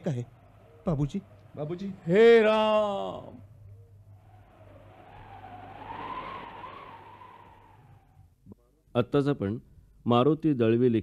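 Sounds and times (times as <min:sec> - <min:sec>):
faint wavering tone: 0:00.0 - 0:02.0, 0:02.7 - 0:08.2
low hum: 0:00.0 - 0:08.4
rushing whoosh: 0:01.2 - 0:08.3.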